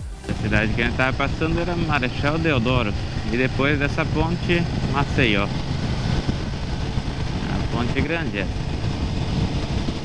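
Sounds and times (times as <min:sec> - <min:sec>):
motorcycle engine drone: 0:00.0 - 0:10.0
wind rush: 0:00.0 - 0:10.0
person speaking: 0:00.2 - 0:01.0.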